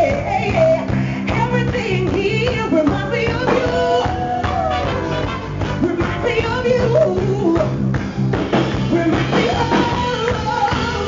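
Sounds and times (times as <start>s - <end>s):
woman singing: 0.0s - 5.0s, 5.8s - 7.9s, 8.9s - 11.0s
drums: 0.0s - 11.0s
electric bass: 0.0s - 11.0s.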